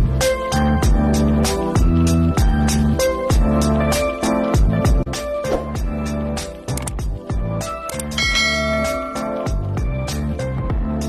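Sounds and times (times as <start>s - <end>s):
background music with steady beat: 0.0s - 11.0s
bright bell chime: 8.2s - 9.9s.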